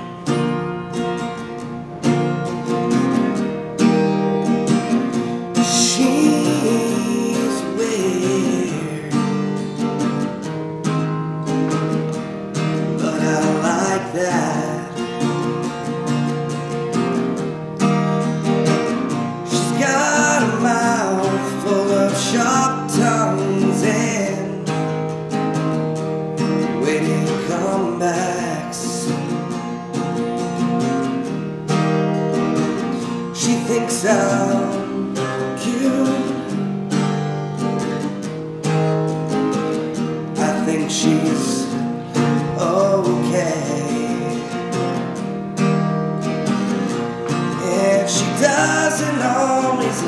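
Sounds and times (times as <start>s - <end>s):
acoustic guitar strumming: 0.0s - 50.0s
man singing: 5.4s - 9.7s, 12.8s - 15.7s, 18.7s - 25.2s, 26.6s - 29.4s, 33.0s - 36.7s, 40.2s - 45.1s, 47.2s - 50.0s.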